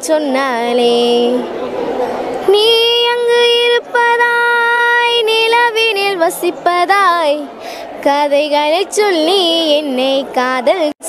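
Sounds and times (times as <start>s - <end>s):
girl singing unaccompanied: 0.0s - 1.5s, 2.4s - 11.0s.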